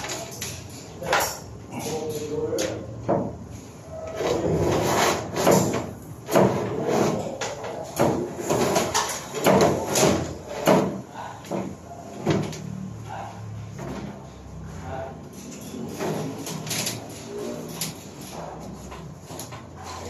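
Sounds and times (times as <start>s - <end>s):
electrical wire rustling and scraping: 3.5s - 12.6s, 13.7s - 20.0s.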